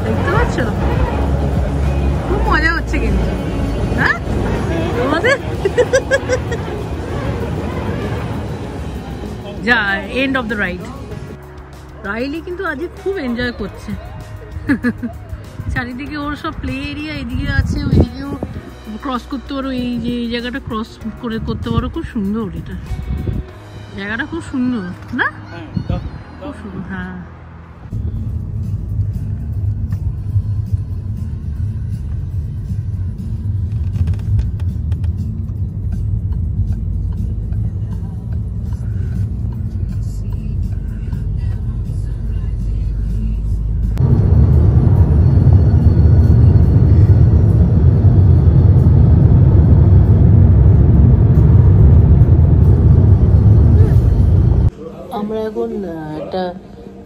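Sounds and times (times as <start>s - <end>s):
car engine and tyres rumble: 0.0s - 54.7s
road and wind roar: 0.0s - 54.8s.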